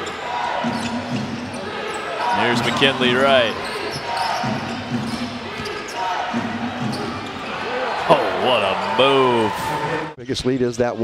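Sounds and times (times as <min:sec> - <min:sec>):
low voices: 0:04.4 - 0:10.2.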